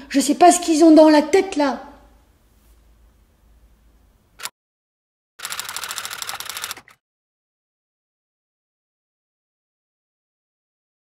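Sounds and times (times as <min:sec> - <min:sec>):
typewriter keystrokes clattering: 0:05.5 - 0:07.0
typewriter short click: 0:05.7 - 0:07.0.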